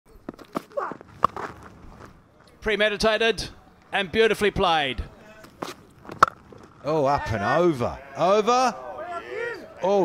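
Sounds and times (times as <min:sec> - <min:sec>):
footfalls on cricket pitch: 0:00.1 - 0:02.5
bat striking ball: 0:06.1 - 0:06.7.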